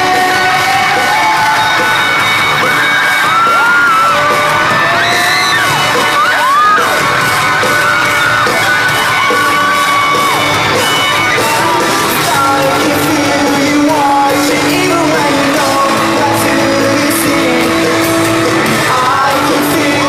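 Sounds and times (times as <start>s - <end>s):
fans screaming and singing along: 0.0s - 20.0s
live rock band playing: 0.0s - 20.0s.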